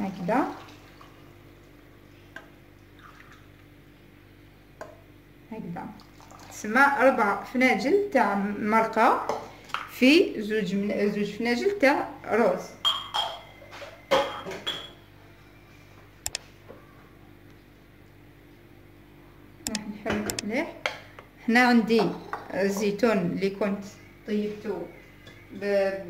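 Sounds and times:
liquid poured into a pan: 6.0s - 6.6s
ceramic cups clinking: 12.8s - 15.0s.

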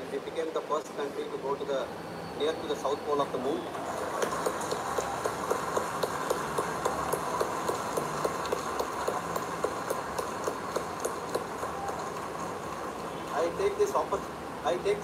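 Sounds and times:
steady individual claps: 3.8s - 13.4s
crowd applauding: 3.8s - 13.7s.

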